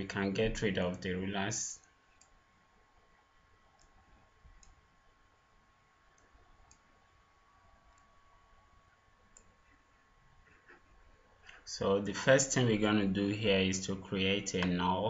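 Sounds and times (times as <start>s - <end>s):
computer mouse clicks: 2.1s - 2.4s, 3.7s - 4.8s, 6.1s - 6.9s, 7.9s - 8.1s, 9.3s - 9.6s.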